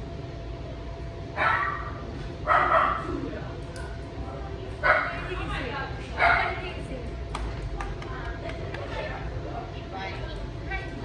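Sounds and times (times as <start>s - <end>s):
dog barking: 1.4s - 3.1s, 4.8s - 5.2s, 6.2s - 6.6s.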